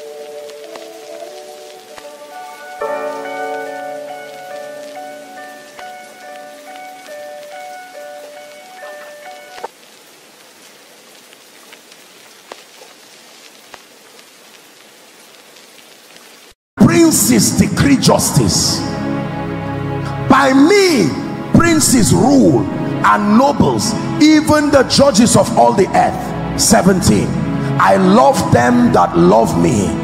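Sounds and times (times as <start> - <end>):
gentle background music: 0.0 - 9.7, 16.9 - 30.0
rain-like hiss: 0.0 - 28.8.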